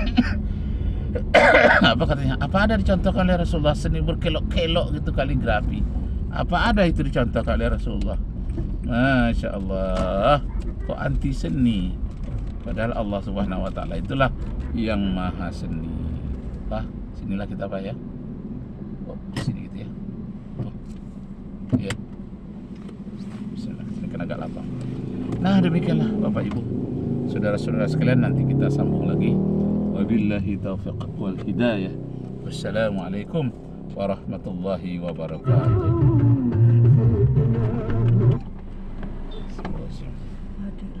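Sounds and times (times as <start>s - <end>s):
car cabin hum: 1.1s - 28.7s, 29.9s - 41.0s
melodic vocal phrase: 35.4s - 38.4s.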